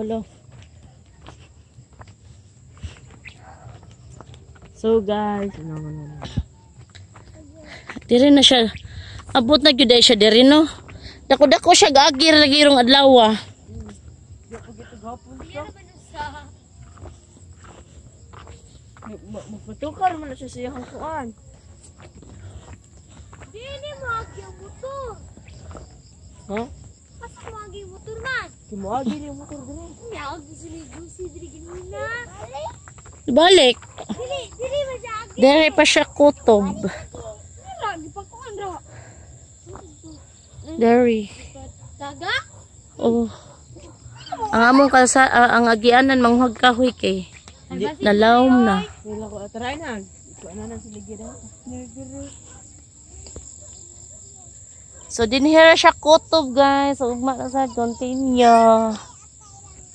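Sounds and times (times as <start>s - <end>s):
crickets trilling: 0.0s - 59.9s
insect chorus drone: 0.0s - 59.9s.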